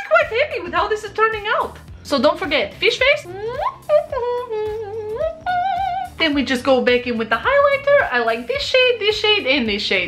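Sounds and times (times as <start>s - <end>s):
woman humming long held notes: 3.2s - 6.2s.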